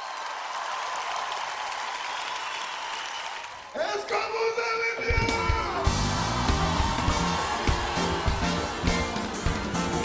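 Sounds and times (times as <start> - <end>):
arena audience applauding: 0.0 - 4.2, 5.6 - 10.0.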